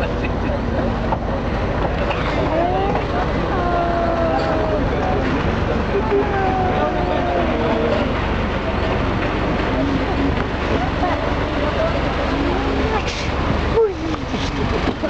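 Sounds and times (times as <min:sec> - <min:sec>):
ferry engine rumbling: 0:00.0 - 0:15.0
people talking: 0:00.0 - 0:15.0.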